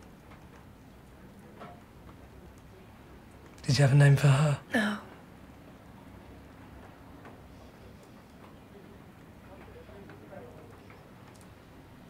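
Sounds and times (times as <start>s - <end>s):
faint irregular ticks: 0.0s - 3.7s, 9.5s - 11.8s.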